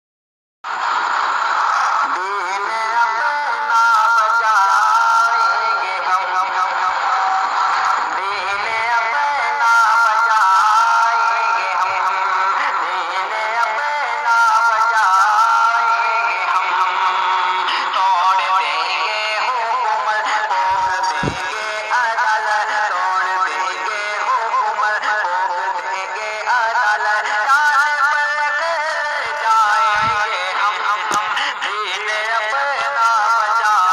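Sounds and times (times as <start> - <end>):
person singing devotional song: 1.8 - 33.9.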